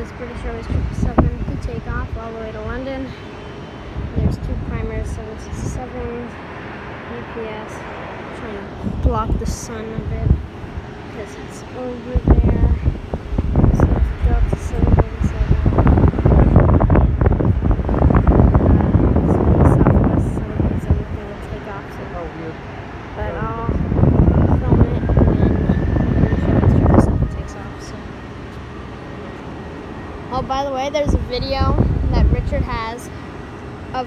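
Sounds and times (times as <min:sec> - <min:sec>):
faint voices: 0:00.0 - 0:03.4, 0:07.0 - 0:29.5
wind buffeting microphone: 0:00.0 - 0:34.0.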